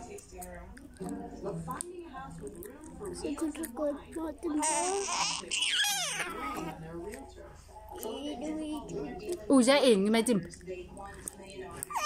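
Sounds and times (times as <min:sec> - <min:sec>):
baby squealing and cooing: 0:04.6 - 0:06.7.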